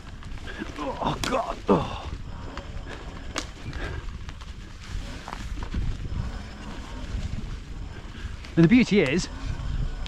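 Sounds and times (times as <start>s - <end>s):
e-bike rumbling over rough track: 0.0s - 10.0s.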